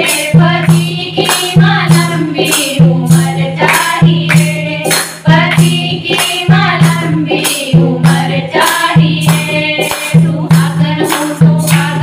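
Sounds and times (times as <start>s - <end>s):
hand clapping: 0.0s - 2.8s, 3.6s - 7.7s, 8.6s - 12.0s
women singing devotional song: 0.0s - 12.0s.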